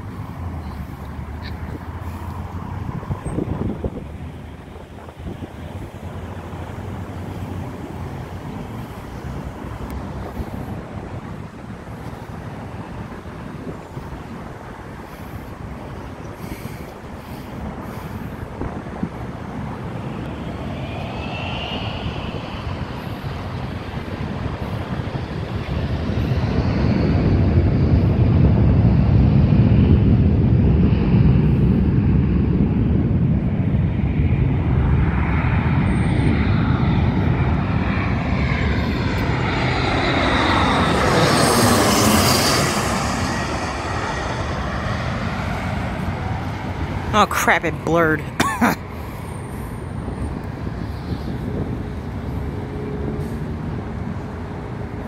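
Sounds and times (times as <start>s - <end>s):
jet airliner passing overhead: 0.0s - 55.0s.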